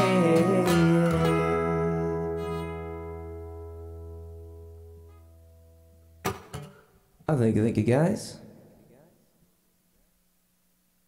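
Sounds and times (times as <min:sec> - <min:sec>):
acoustic guitar chord ringing: 0:00.0 - 0:07.0.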